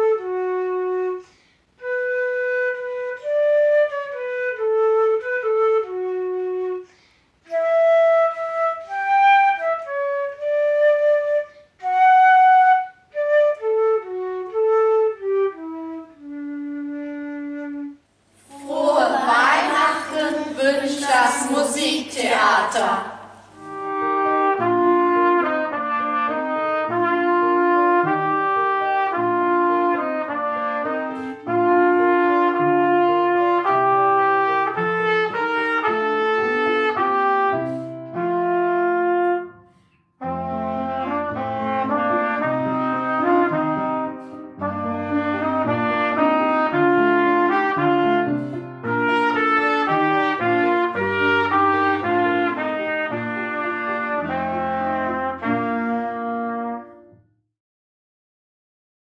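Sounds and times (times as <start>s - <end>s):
trumpet melody: 0.0s - 1.2s, 1.8s - 6.8s, 7.5s - 57.3s
upright piano accompaniment: 18.4s - 39.6s, 40.2s - 57.1s.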